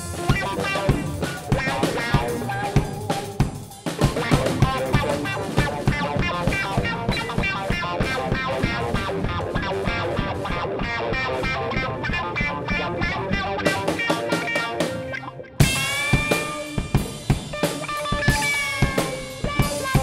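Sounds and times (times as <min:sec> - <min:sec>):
band playing: 0:00.0 - 0:20.0.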